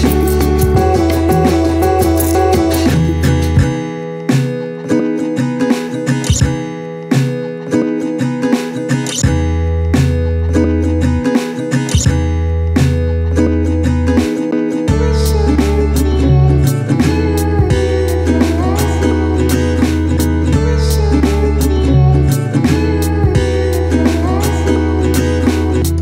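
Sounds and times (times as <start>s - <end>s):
low bass line: 0.0s - 3.8s, 14.9s - 26.0s
acoustic guitar plucked and strummed: 0.0s - 26.0s.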